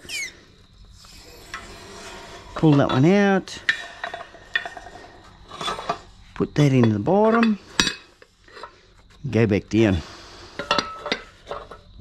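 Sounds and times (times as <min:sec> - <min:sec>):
hydraulic press squeak: 0:00.0 - 0:00.4.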